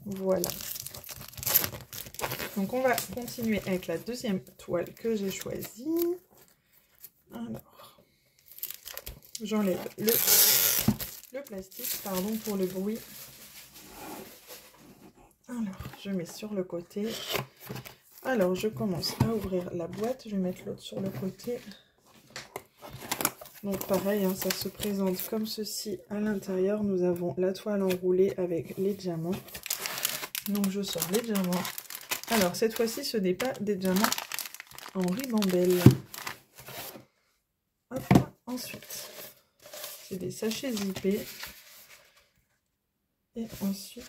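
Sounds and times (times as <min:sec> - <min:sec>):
plastic bags rustling: 0:00.0 - 0:04.0, 0:08.5 - 0:14.8, 0:22.9 - 0:25.2, 0:29.4 - 0:37.0
plastic wrapping crinkling: 0:00.0 - 0:04.2, 0:08.5 - 0:14.8, 0:22.9 - 0:25.3, 0:29.3 - 0:37.0, 0:39.6 - 0:42.1.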